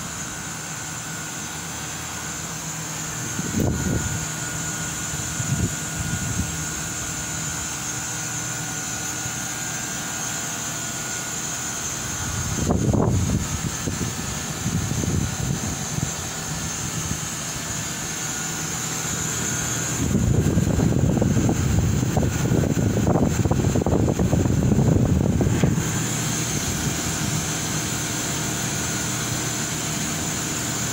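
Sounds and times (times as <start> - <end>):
outdoor condensing unit humming: 0.0 - 30.9
rush of fan air: 0.0 - 30.9.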